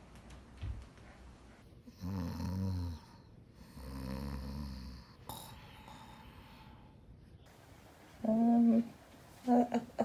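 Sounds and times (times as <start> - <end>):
dog snoring: 1.9 - 5.5.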